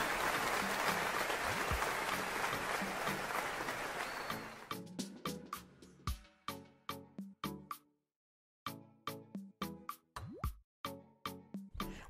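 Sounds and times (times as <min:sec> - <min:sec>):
crowd applauding: 0:00.0 - 0:04.7.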